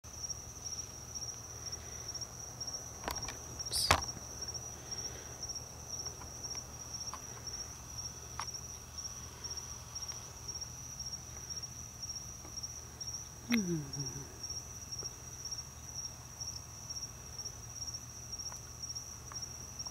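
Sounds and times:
crickets chirping: 0.1 - 19.9.

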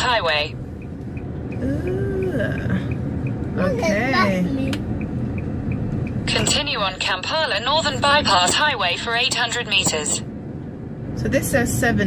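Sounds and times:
turn signal ticking: 0.0 - 10.2
road and engine rumble: 0.0 - 12.0.

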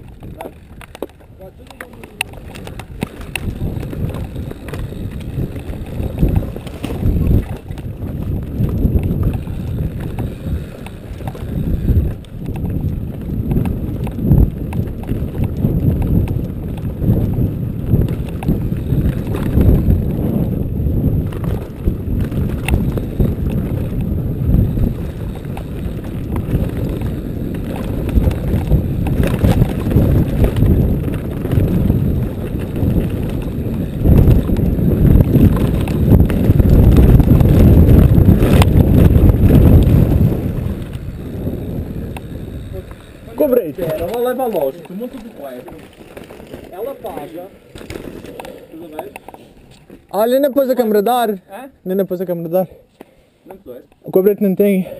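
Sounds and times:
wind on microphone: 0.0 - 51.2
tyres over dirt and stones: 0.0 - 51.4
bike rattling: 0.0 - 52.8.

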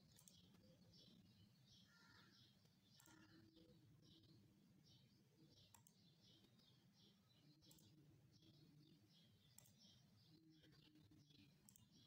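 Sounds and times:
computer mouse clicks: 0.0 - 0.6, 2.6 - 3.3, 5.6 - 6.1, 7.6 - 7.9, 9.5 - 9.9, 11.6 - 12.0.

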